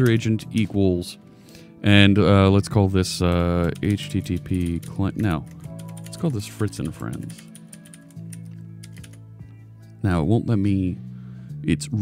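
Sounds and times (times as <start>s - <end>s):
keyboard keys clicking: 0.0s - 0.8s, 3.2s - 9.2s
quiet background music: 0.0s - 12.0s.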